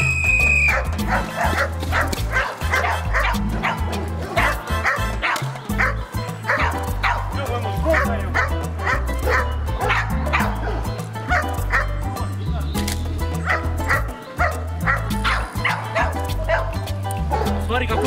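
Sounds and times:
background music with bass line: 0.0 - 18.0
dog barking: 0.7 - 7.3, 7.9 - 11.9, 13.4 - 18.0.

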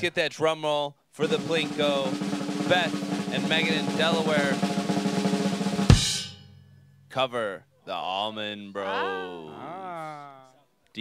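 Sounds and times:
snare drum roll: 1.2 - 6.3.

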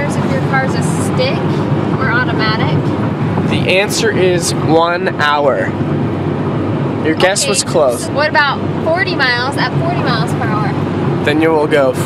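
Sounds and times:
people talking: 0.0 - 2.8, 3.5 - 5.7, 7.0 - 12.0
car cabin road noise: 0.0 - 12.0.

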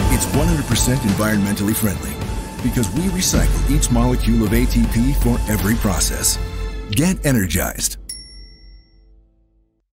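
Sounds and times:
low background music: 0.0 - 9.7
bell-like ding: 8.0 - 9.1.

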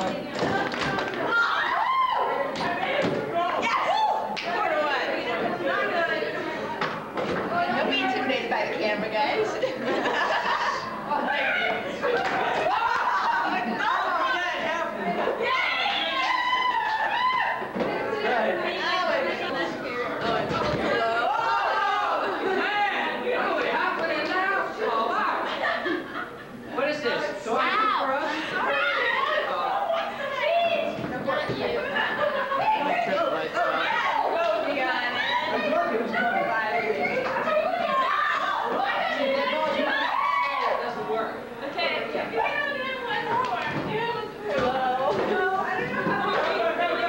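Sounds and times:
people chattering: 0.0 - 47.0
voices talking and calling out: 0.0 - 47.0.

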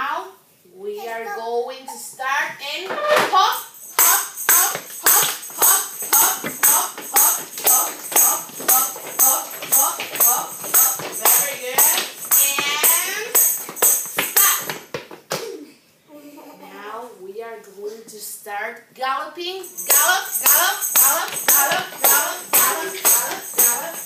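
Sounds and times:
tambourine struck by hand: 3.6 - 14.8, 19.7 - 24.0.

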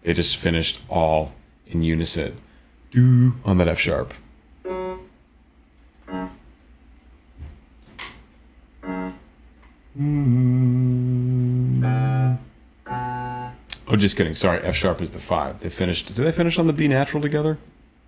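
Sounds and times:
man singing single notes: 3.0 - 3.4, 9.9 - 12.5.

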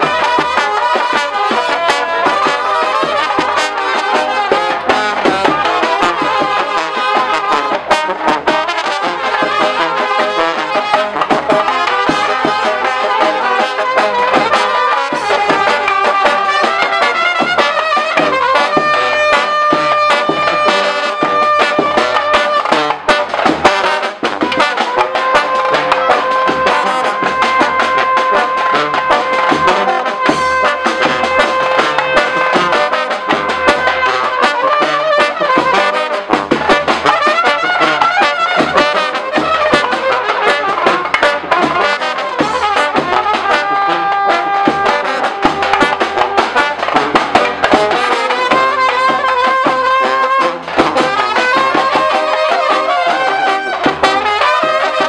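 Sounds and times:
bass drum beat: 0.0 - 54.4
brass band playing: 0.0 - 55.0.

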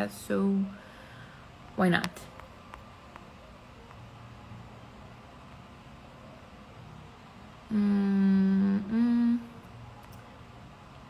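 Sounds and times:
woman humming: 7.7 - 9.6.

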